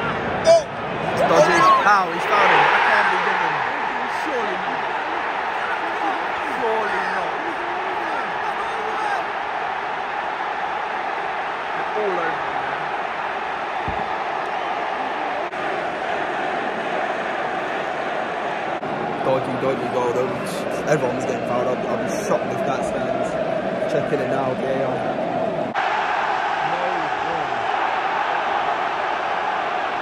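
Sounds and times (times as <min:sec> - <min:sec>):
stadium crowd roar: 0:00.0 - 0:30.0.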